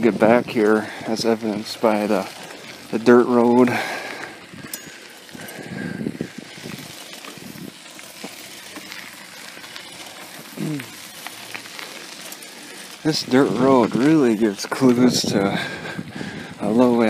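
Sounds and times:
bicycle tyres rolling on dirt: 0.0s - 17.0s
grit crunching and clicking: 0.0s - 17.0s.

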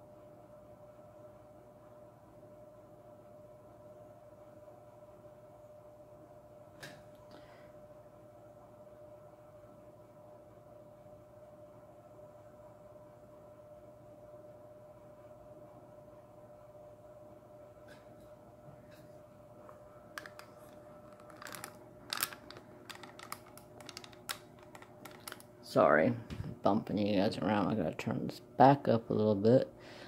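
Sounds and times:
faint steady hum: 0.0s - 30.0s.

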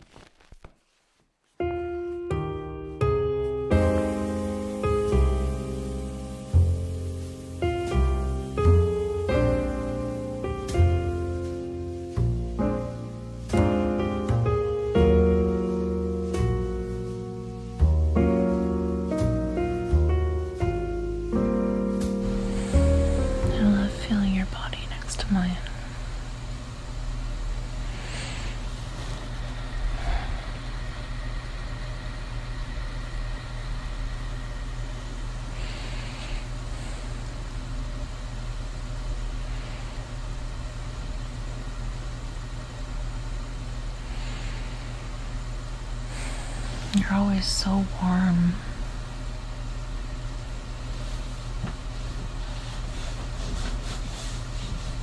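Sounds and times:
musical intro: 1.6s - 24.4s
low rumbling ambient noise: 1.6s - 55.0s
low hum: 2.4s - 55.0s
even hiss: 3.6s - 41.5s, 43.0s - 55.0s.

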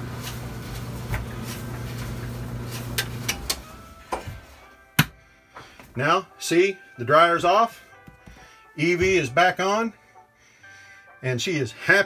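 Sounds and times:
clothes dryer humming: 0.0s - 6.3s.

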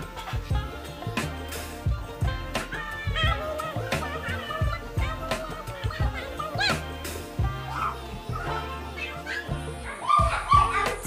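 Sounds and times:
pop song with steady beat: 0.0s - 11.0s
high yelping cries: 2.7s - 11.0s.

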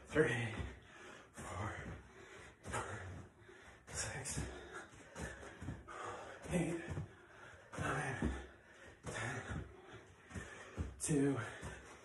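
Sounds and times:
feet thudding on rug: 0.0s - 12.0s
breathy exertion: 0.3s - 12.0s.

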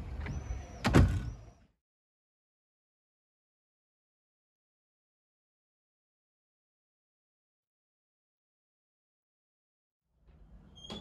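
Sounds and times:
door thudding shut: 0.8s - 1.4s.

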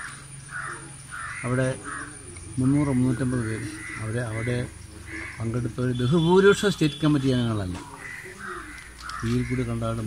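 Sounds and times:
crow cawing: 0.0s - 5.9s, 7.8s - 10.0s.

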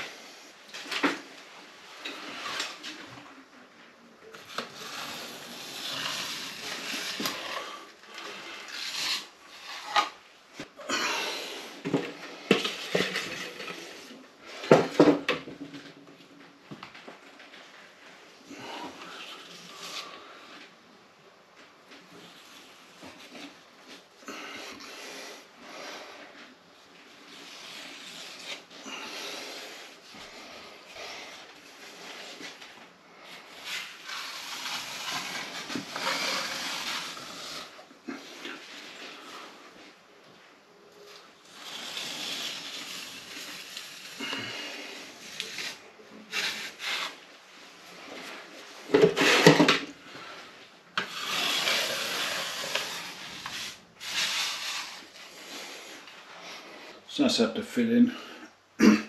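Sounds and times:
metal knife scraping plaster: 4.3s - 10.2s, 33.3s - 39.4s, 51.0s - 55.5s.

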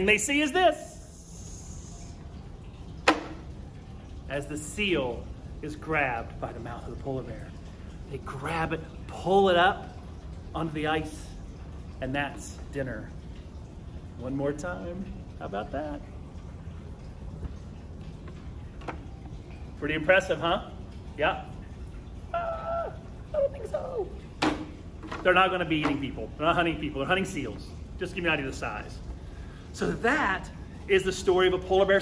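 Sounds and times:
low steady background rumble: 0.0s - 32.0s.

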